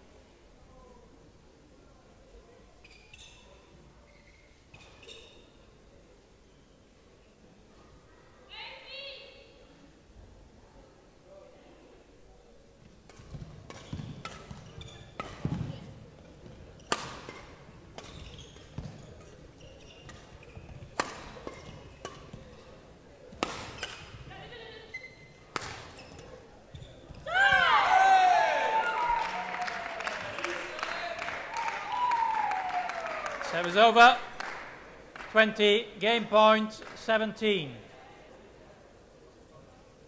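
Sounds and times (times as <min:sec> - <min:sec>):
racket hitting shuttlecock: 0:13.0 - 0:24.3, 0:25.4 - 0:26.4
people shouting and cheering: 0:27.2 - 0:33.8.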